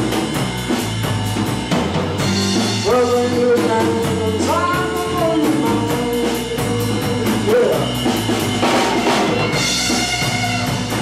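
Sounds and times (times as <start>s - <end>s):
drum kit cymbals beat: 0.0s - 11.0s
electric guitars: 0.0s - 11.0s
live blues band playing: 0.0s - 11.0s.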